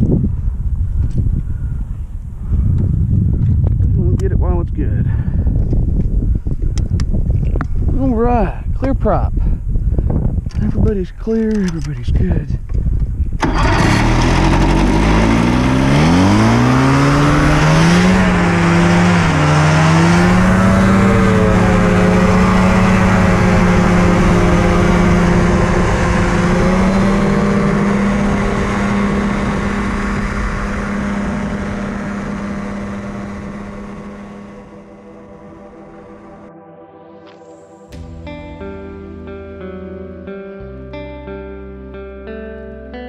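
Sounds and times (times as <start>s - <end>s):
two-stroke engine and propeller: 13.4s - 36.5s.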